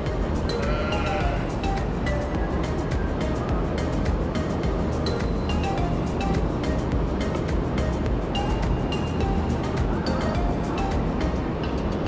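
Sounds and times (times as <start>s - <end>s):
held high synth notes: 0.0s - 2.7s
steady low rumble: 0.0s - 12.0s.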